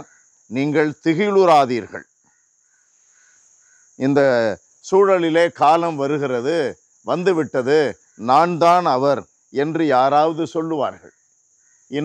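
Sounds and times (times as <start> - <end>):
man speaking: 0.0 - 2.0, 4.0 - 11.1.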